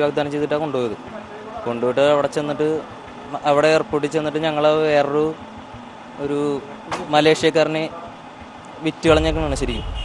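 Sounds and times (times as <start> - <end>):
man talking: 8.8 - 10.0.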